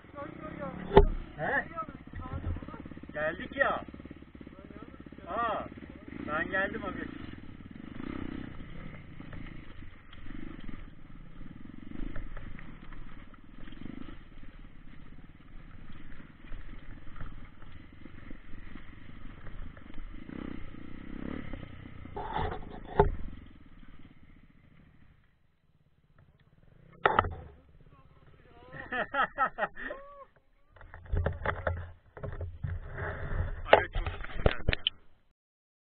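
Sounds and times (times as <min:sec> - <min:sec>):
dirt bike engine rumbling: 0:00.0 - 0:35.3.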